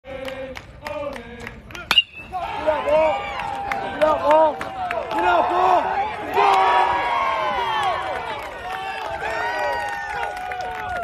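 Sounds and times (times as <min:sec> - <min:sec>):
crowd cheering and shouting: 0:01.9 - 0:11.0.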